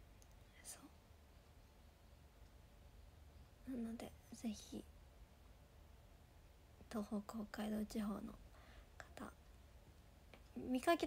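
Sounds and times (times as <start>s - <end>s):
woman speaking soft syllable: 3.6s - 4.9s.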